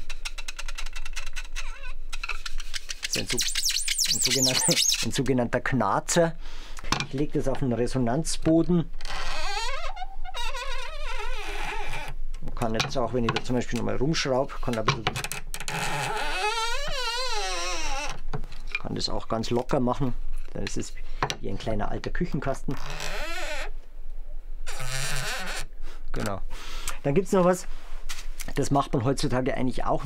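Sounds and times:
wooden creaking: 0.0 - 5.1, 8.9 - 13.8, 14.8 - 18.8.

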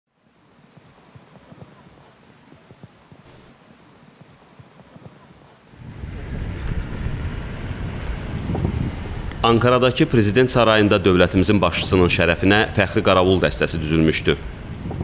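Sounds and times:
faint outdoor ambience: 0.1 - 15.0
light clicks: 0.4 - 1.7
low rumbling noise: 5.7 - 15.0.

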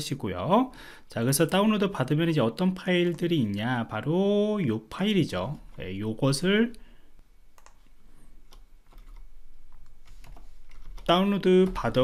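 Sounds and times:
keyboard and mouse clicks: 7.6 - 7.9, 8.5 - 12.0.

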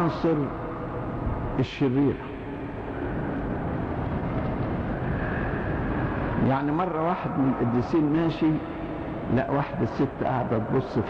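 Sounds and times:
recording hum and hiss: 0.0 - 11.0.

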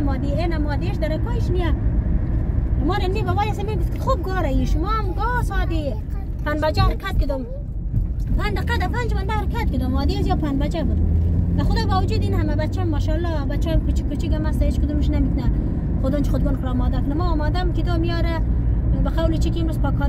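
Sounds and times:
road and engine rumble in car: 0.0 - 20.0.

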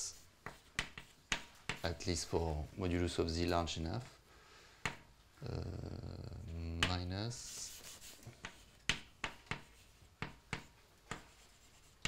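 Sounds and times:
chalk tapping on blackboard: 0.0 - 2.2, 4.8 - 5.1, 6.8 - 12.0.

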